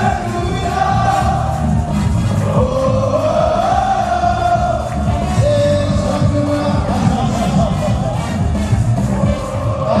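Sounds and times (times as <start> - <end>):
loud live music with driving beat: 0.0 - 10.0.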